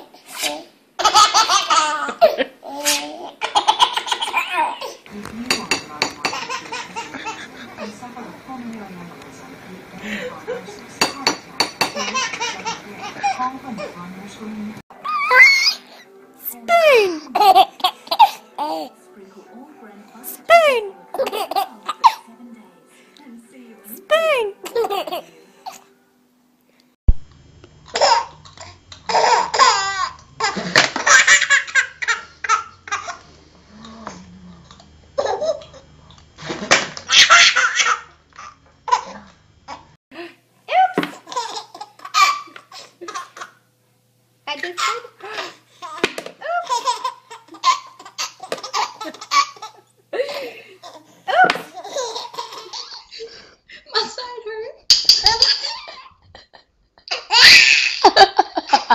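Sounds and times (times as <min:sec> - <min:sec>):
baby laughing: 0:01.0 - 0:05.0, 0:06.3 - 0:07.6, 0:12.0 - 0:13.4, 0:15.0 - 0:16.0, 0:16.7 - 0:19.0, 0:20.5 - 0:22.3, 0:24.2 - 0:25.8, 0:28.0 - 0:33.2, 0:35.2 - 0:35.8, 0:40.9 - 0:43.5, 0:44.8 - 0:53.2, 0:55.1 - 0:56.2, 0:57.1 - 0:58.9
people laughing: 0:06.4 - 0:08.0, 0:57.8 - 0:58.9.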